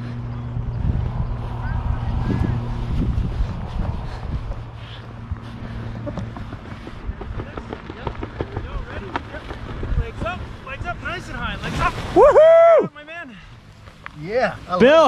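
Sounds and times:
wind rumbling on microphone: 0.0s - 12.5s.

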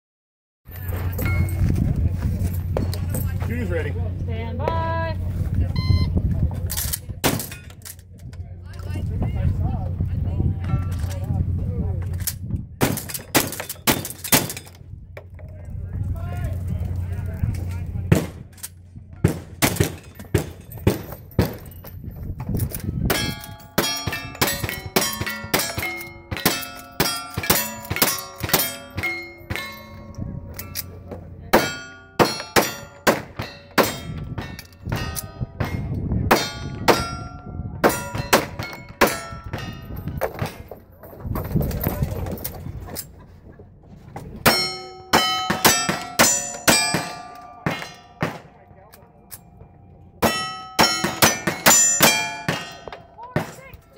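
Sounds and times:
pistol gunshots: 19.2s - 21.5s
steel target clanging: 22.7s - 40.8s, 44.4s - 48.6s, 50.2s - 53.8s.

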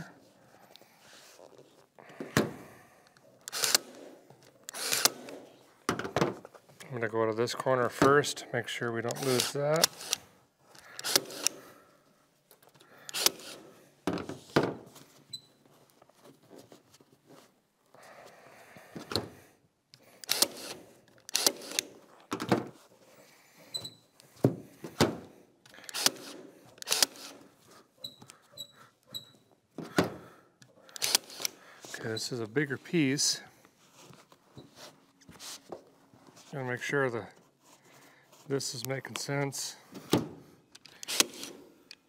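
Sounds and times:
cordless stapler firing staples: 3.5s - 4.0s, 4.7s - 5.4s, 9.1s - 11.6s, 13.1s - 13.6s, 20.2s - 22.0s, 25.8s - 27.4s, 30.9s - 31.6s, 40.8s - 41.6s.

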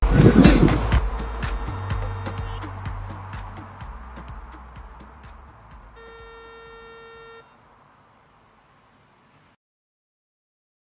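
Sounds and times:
steady pitched tone: 0.0s - 5.2s.

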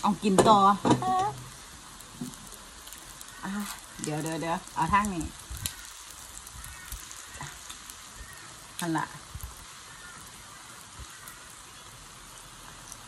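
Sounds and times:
meat sizzling on a grill: 0.0s - 13.0s.

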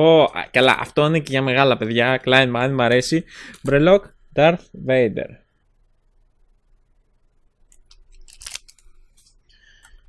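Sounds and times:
plastic packaging crinkling: 7.7s - 9.4s.

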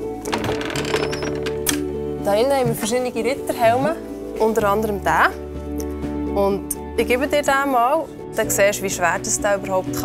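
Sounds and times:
background music with held notes: 0.0s - 10.0s
wooden chest lid clicks and knocks: 0.2s - 1.9s.

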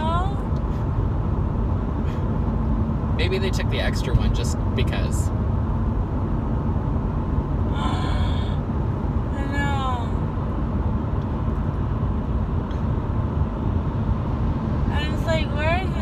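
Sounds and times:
car road rumble inside cabin: 0.0s - 16.0s.

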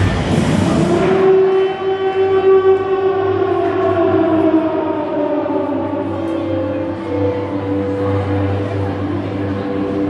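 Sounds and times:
siren-like tone gliding down: 0.4s - 8.3s.

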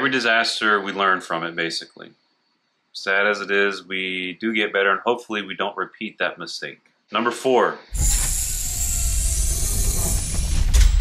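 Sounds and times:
dense mechanical whir: 7.9s - 11.0s.

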